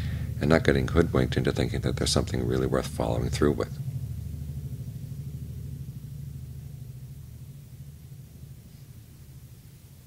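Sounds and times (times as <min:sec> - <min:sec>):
low mechanical rumble with hum: 0:00.0 - 0:10.0.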